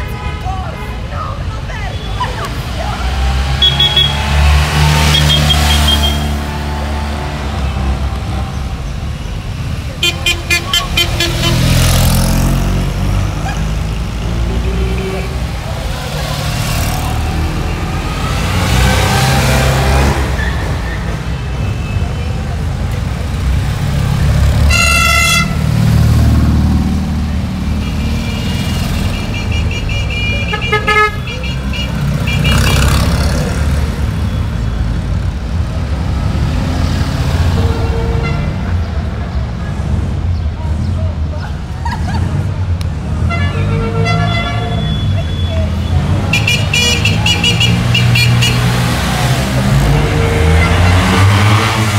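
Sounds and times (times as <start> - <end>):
car horns tooting: 0.0 - 12.2, 24.6 - 25.9, 27.7 - 33.4, 37.4 - 38.8, 43.2 - 51.9.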